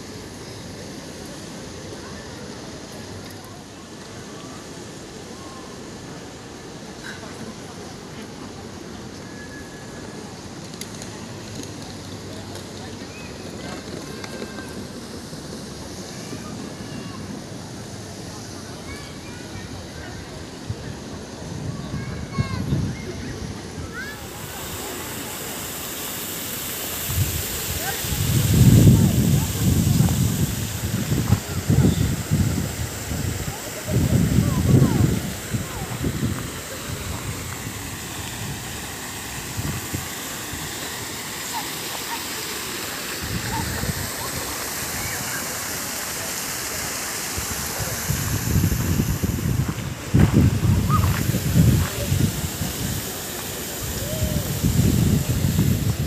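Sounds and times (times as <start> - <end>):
faint voices: 0.0 - 56.0
fountain water splashing: 0.0 - 56.0
wind buffeting microphone: 20.6 - 24.0, 27.0 - 40.7, 47.4 - 53.2, 53.8 - 56.0.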